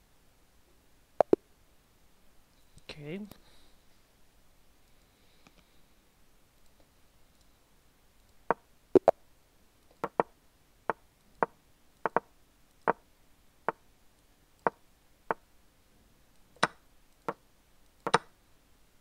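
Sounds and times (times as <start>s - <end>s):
sharp wooden clicks: 9.8s - 10.3s, 10.9s - 13.0s, 16.6s - 18.3s.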